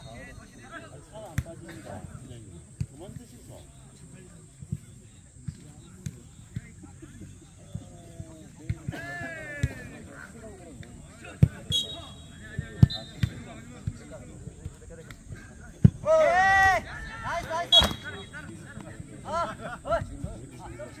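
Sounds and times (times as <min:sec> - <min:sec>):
ball kicked with sharp smacks: 0:10.8 - 0:11.8, 0:12.7 - 0:15.2, 0:17.8 - 0:18.2
short player calls: 0:11.7 - 0:13.2.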